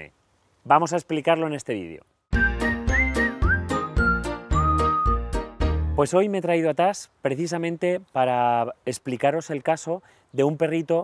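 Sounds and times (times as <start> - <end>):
cheerful music jingle: 2.4 - 6.1.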